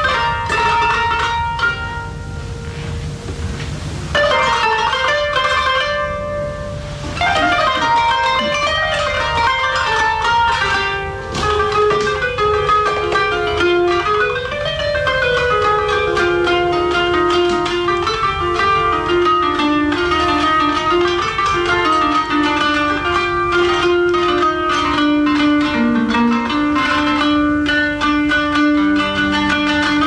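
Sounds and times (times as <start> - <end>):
plucked zither melody: 0.0 - 30.0.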